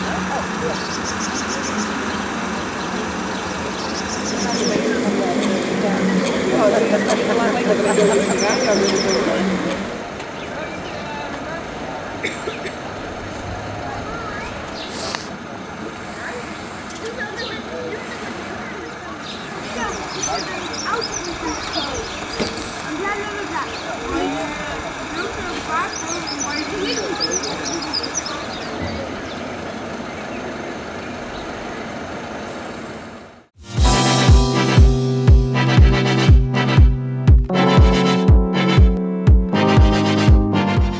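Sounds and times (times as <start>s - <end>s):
vehicle engine running: 0.0s - 12.2s, 12.8s - 37.0s
faint voices: 0.0s - 31.0s
passing traffic road noise: 0.0s - 33.7s
bird chirps: 0.1s - 11.1s, 18.8s - 22.8s, 25.7s - 31.6s
electronic music with heavy beat: 33.6s - 40.9s.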